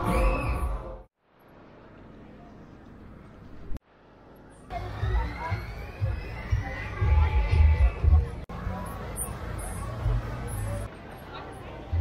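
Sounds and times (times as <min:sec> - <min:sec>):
fairground background noise: 0:00.0 - 0:12.0
fairground music with pounding bass: 0:04.8 - 0:08.4.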